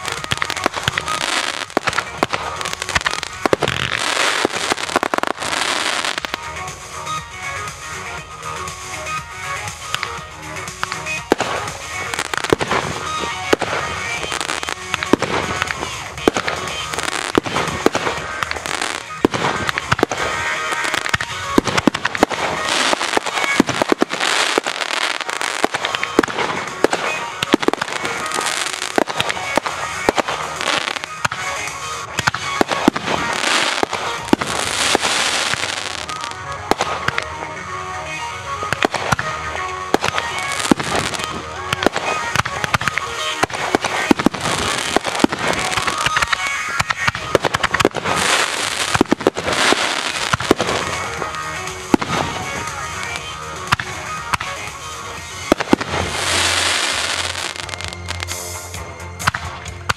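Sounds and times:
fireworks bangs: 0.0s - 7.2s, 9.2s - 58.6s.

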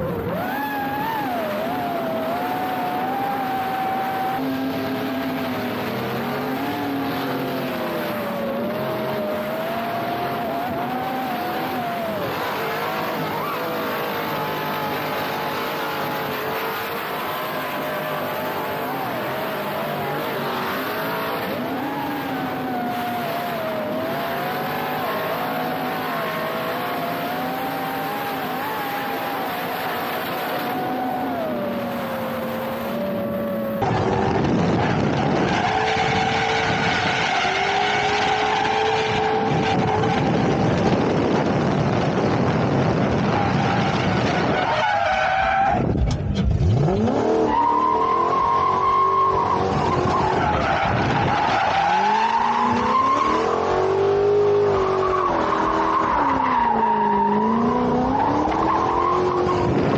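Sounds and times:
car engines revving high: 0.0s - 59.9s.

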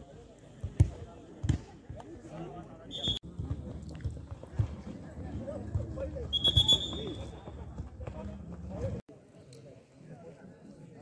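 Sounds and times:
faint murmur of voices: 0.0s - 11.0s.

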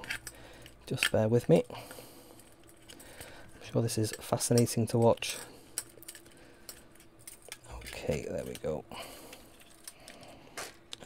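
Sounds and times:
plastic parts clicking and rustling: 0.0s - 1.6s, 2.4s - 11.0s.

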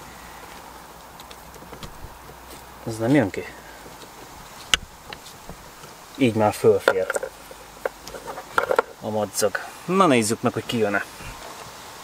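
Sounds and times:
wiring harness rustling: 0.5s - 9.1s.

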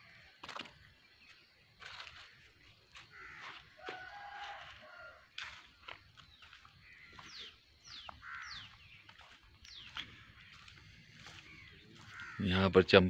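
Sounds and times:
faint rooster crowing: 3.1s - 5.7s.

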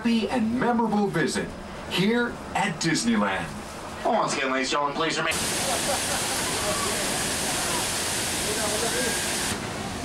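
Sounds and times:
videotape static hiss: 4.0s - 10.0s.

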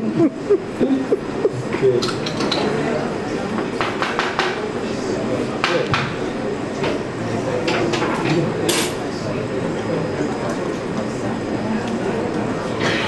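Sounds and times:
indistinct background talk: 0.0s - 13.0s.

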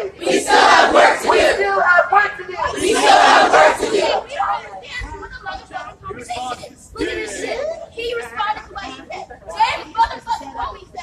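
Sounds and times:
crowd chanting and shouting: 0.0s - 8.8s.

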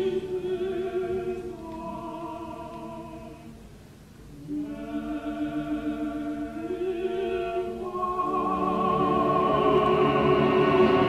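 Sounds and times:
opera chorus singing held notes: 0.0s - 3.6s, 4.4s - 11.0s
orchestra playing: 8.5s - 11.0s.

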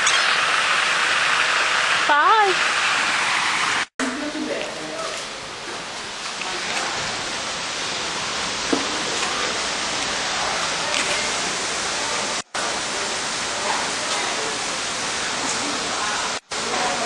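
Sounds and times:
waterfall rushing: 0.0s - 3.9s, 5.4s - 17.0s.

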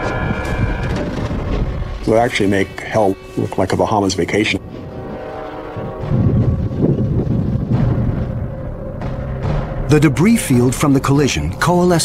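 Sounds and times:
deep low rumble: 0.0s - 3.5s, 4.6s - 9.8s.

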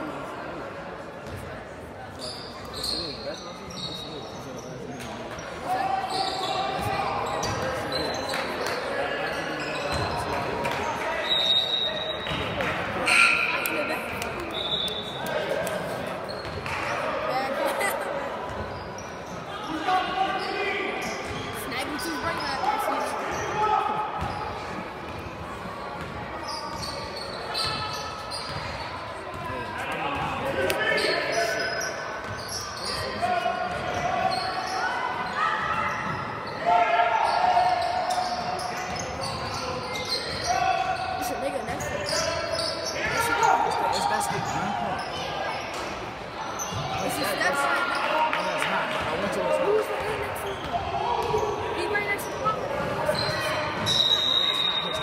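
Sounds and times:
voices calling and chattering: 0.0s - 55.0s
basketball bouncing on court: 26.0s - 26.9s, 28.4s - 29.5s.

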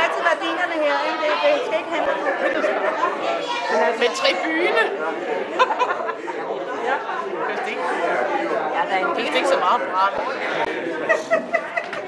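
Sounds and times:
people chattering in a hall: 0.0s - 12.0s.

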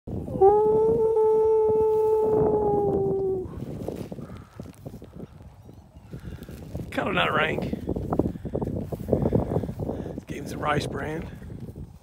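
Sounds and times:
soft rustling: 1.9s - 12.0s.

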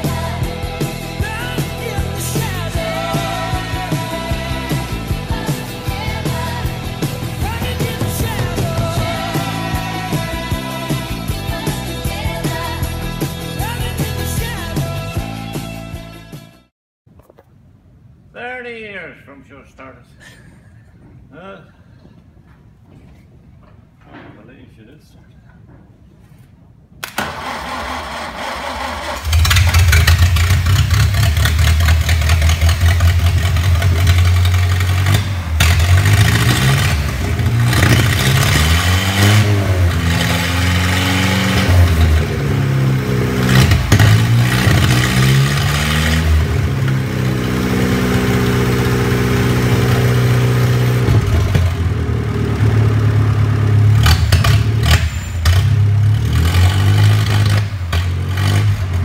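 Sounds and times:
car engine revving: 0.0s - 14.7s, 27.2s - 59.0s.

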